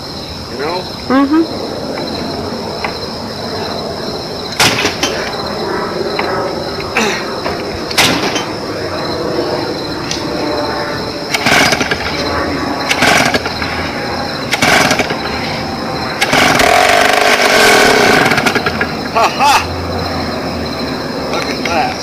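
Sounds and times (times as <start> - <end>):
chainsaw engine sputtering: 11.3 - 13.8, 14.4 - 19.0
chainsaw starter cord pulls: 16.2 - 18.6.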